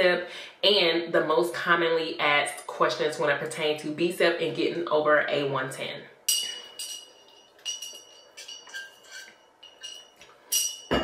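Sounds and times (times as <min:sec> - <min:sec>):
glass tumbler clinking: 0:06.3 - 0:11.0.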